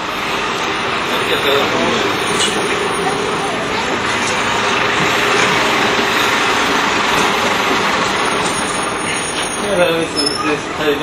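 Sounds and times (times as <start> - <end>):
vehicle engine running: 0.0 - 11.0
voices: 0.0 - 11.0.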